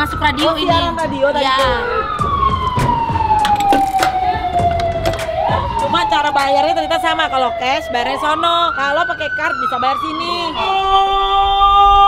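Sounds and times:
emergency siren wailing: 0:00.0 - 0:12.0.

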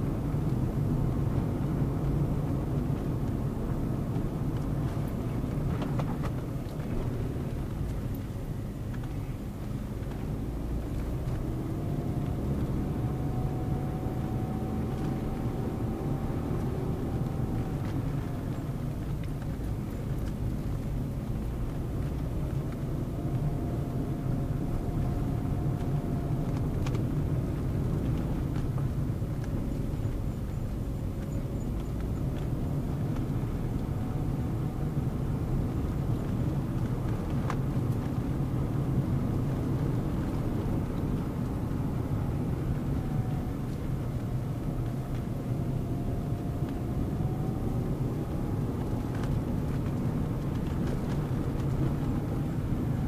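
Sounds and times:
car engine and road noise: 0:00.0 - 0:53.0.

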